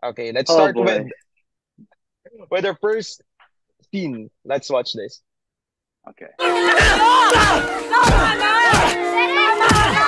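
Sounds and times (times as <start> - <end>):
people shouting and yelling: 6.4 - 10.0.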